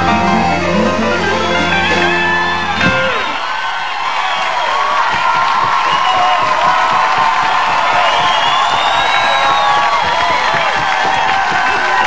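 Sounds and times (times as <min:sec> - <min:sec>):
audience cheering and whooping: 0:00.0 - 0:12.0
audience clapping: 0:01.0 - 0:12.0.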